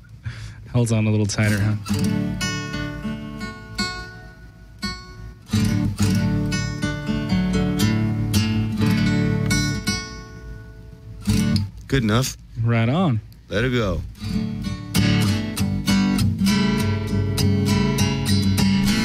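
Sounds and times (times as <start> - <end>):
acoustic guitar strumming: 1.4 - 12.4, 13.6 - 19.0.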